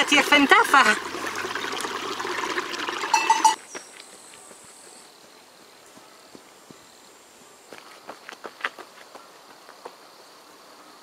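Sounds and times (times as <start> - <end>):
water trickling and splashing: 0.0 - 3.6
brief high-pitched sound: 3.1 - 3.6.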